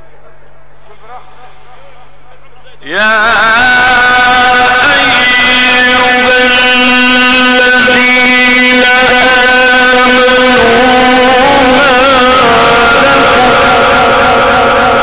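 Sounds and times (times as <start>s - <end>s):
man singing religious chant: 2.8s - 15.0s.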